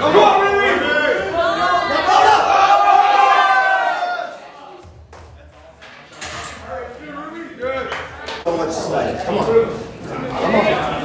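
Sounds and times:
people shouting encouragement: 0.0 - 4.8.

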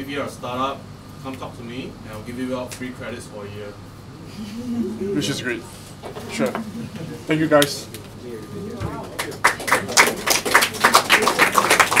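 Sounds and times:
audience clapping: 8.9 - 12.0.

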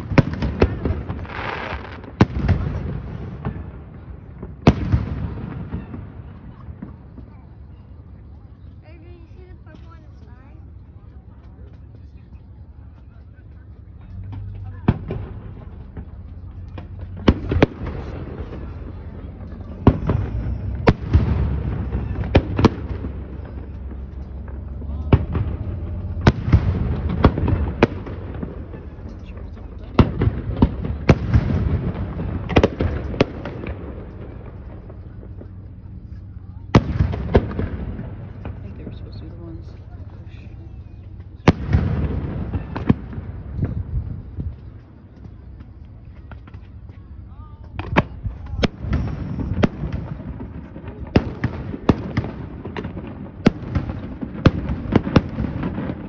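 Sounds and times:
fireworks bursting: 0.0 - 10.9, 12.7 - 56.0
rolling rumble: 0.0 - 56.0.

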